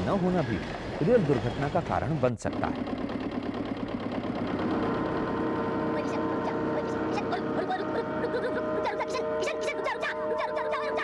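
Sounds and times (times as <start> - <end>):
tractor diesel engine chugging: 0.0 - 11.0
steady high tone: 4.6 - 11.0.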